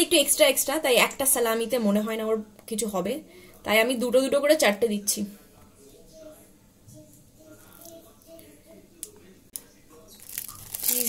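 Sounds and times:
plastic wrapper crinkling: 0:10.1 - 0:11.0.

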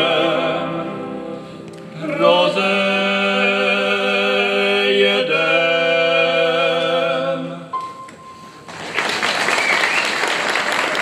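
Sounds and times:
two men singing a folk song: 0:00.0 - 0:07.7.

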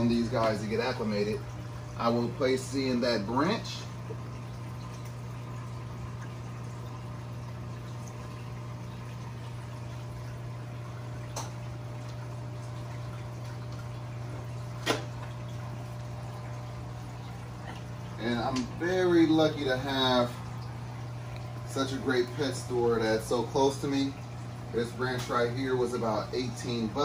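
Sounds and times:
aquarium pumps humming: 0:00.0 - 0:27.0.

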